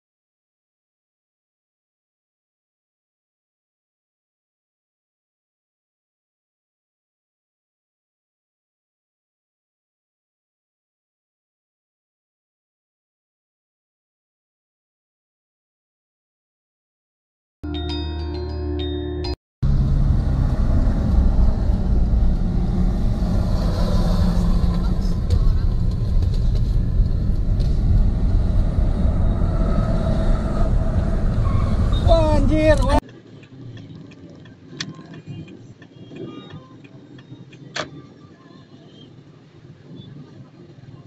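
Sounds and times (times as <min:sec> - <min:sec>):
quiet traffic noise: 0:19.6 - 0:41.0
car cabin rumble: 0:19.7 - 0:33.0
voices talking: 0:23.9 - 0:26.2, 0:31.4 - 0:33.0.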